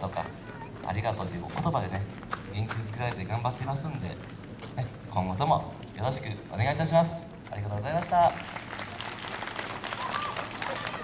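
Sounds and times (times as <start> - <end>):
audience clapping: 7.9 - 11.0.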